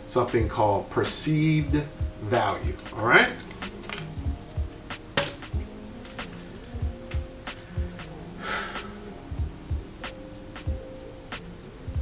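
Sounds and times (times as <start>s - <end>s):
background music with low beat: 0.0s - 12.0s.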